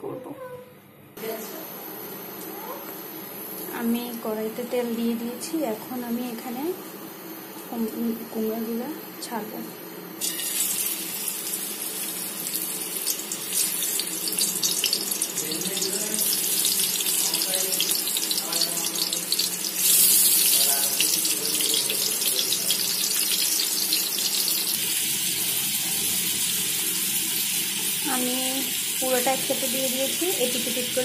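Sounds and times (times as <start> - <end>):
slices sizzling in hot oil: 10.2 - 31.0.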